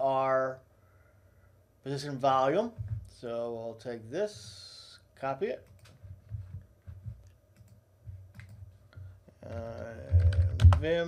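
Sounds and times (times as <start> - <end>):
man speaking: 0.0 - 0.6, 1.8 - 5.7, 9.4 - 11.0
computer keyboard typing: 5.6 - 6.0, 7.2 - 8.6, 9.5 - 11.0
clicks and thuds: 9.6 - 11.0.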